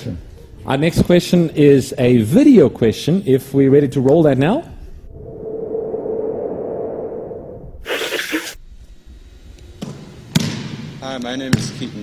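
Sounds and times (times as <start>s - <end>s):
steady hum-like tone: 0.0s - 11.1s.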